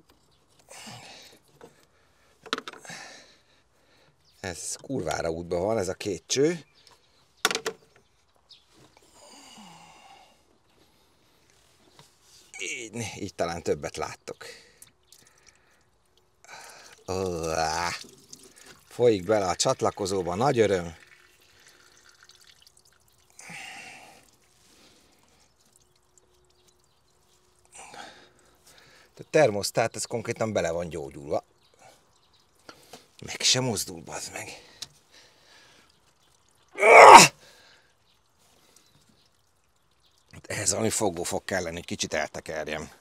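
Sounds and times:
faint liquid dripping: 8.0s - 43.0s
person sighing: 9.2s - 10.3s, 36.8s - 37.3s.

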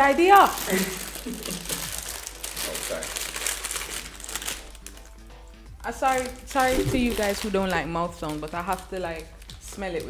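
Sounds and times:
plastic packet crinkling: 0.2s - 5.2s, 6.0s - 10.0s.

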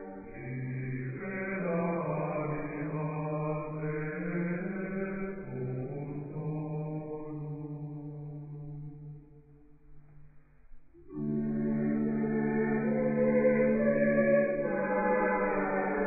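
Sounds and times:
slow chant sung in unison: 0.0s - 9.2s, 11.1s - 16.0s.

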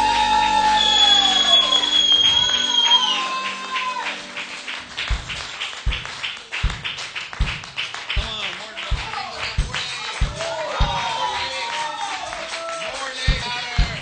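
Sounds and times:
voices holding a long note: 0.0s - 4.5s
steady low drum beat: 5.0s - 11.4s, 13.1s - 14.0s.

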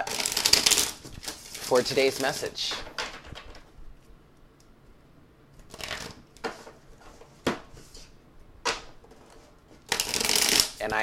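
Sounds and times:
cards riffling: 0.0s - 3.6s, 9.0s - 10.9s
cards rustling and snapping: 0.0s - 3.7s, 8.8s - 11.0s.

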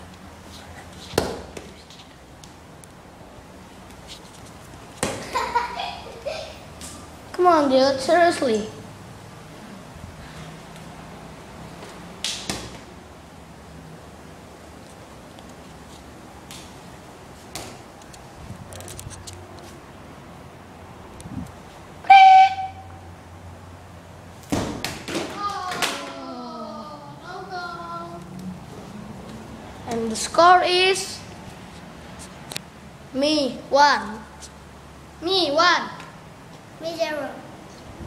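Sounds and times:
football thud on tiled floor: 1.1s - 1.7s, 12.2s - 12.9s, 24.4s - 25.9s
child's voice: 7.3s - 8.8s, 25.3s - 28.4s, 29.8s - 31.2s, 33.2s - 34.3s, 35.2s - 36.1s, 36.8s - 37.5s
football thump on hard floor: 24.5s - 25.4s.

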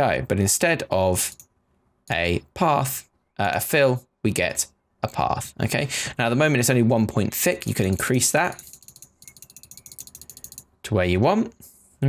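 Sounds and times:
computer mouse ticking: 1.2s - 1.5s, 7.7s - 10.7s.

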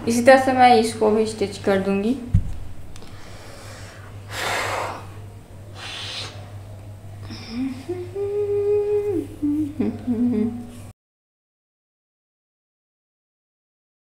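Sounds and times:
steady low hum: 0.0s - 10.9s
woman humming: 7.2s - 10.9s.

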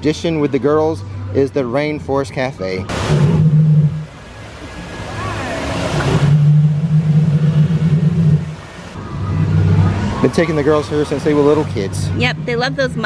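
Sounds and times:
loud low rumble: 2.9s - 4.2s, 5.8s - 13.0s
hissing mist jets: 2.9s - 12.1s
splashing waterfalls: 2.9s - 12.1s.

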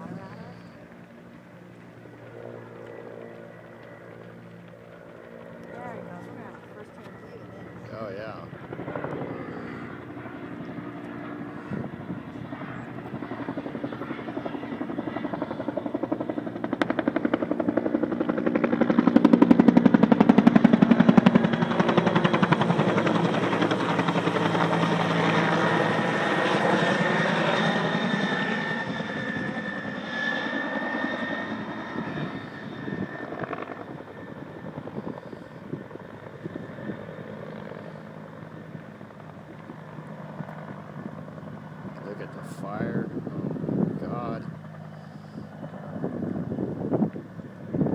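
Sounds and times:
helicopter passing overhead: 0.0s - 47.9s.

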